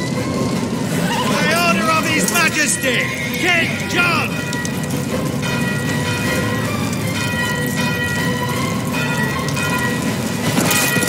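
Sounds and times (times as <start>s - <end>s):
low noisy rumble: 0.0s - 11.0s
orchestral high notes: 0.0s - 11.0s.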